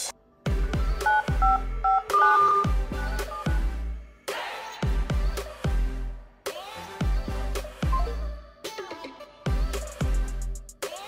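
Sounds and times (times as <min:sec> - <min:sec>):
electronic music with heavy bass: 0:00.0 - 0:04.0
phone dial-pad beeps: 0:01.0 - 0:03.6.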